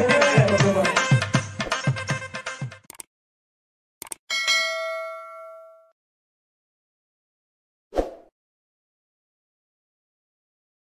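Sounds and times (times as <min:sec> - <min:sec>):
bright bell ding: 0:04.3 - 0:06.0.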